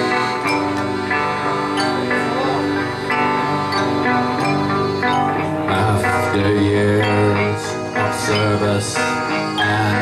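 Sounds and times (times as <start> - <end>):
rock band with accordion: 0.0 - 10.0.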